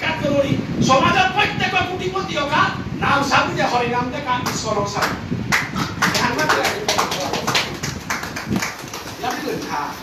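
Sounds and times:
man lecturing into microphone: 0:00.0 - 0:05.4.

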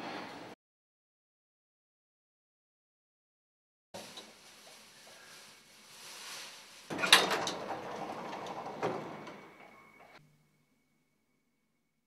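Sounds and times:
lift doors sliding open: 0:06.9 - 0:10.2.

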